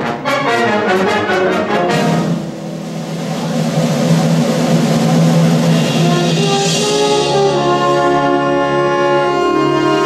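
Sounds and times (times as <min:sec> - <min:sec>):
wind band sustained low chord: 0:00.2 - 0:10.0.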